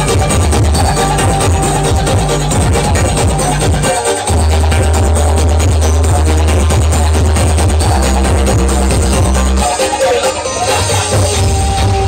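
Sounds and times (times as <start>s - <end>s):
electronic dance music with deep bass: 0.0s - 12.0s.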